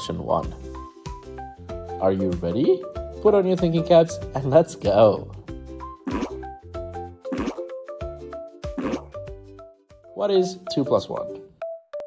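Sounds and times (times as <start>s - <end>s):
cheerful children's music: 0.0s - 12.0s
cartoon plop sound: 6.1s - 6.4s, 7.3s - 7.7s, 8.8s - 9.2s.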